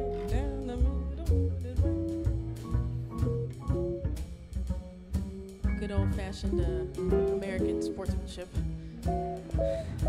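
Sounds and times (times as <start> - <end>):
drum kit: 0.0 - 10.0
guitar and piano notes: 0.0 - 10.0
jazz band playing: 0.0 - 10.0
upright bass: 0.0 - 10.0.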